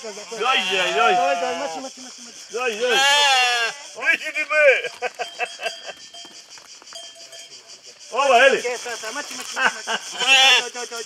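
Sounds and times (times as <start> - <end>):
sheep bleating: 0.4 - 1.8, 2.8 - 3.9, 10.1 - 10.7.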